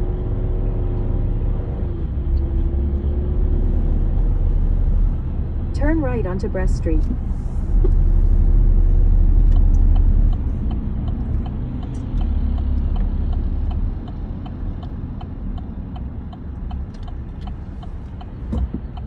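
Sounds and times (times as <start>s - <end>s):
car road and engine rumble: 0.0s - 19.0s
turn signal clicking: 9.1s - 19.0s.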